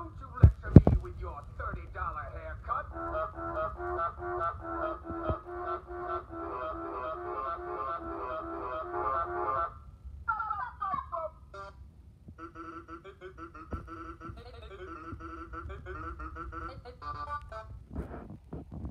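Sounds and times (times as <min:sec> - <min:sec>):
looped tune of goose-honk samples: 0:02.7 - 0:09.9, 0:11.6 - 0:18.2.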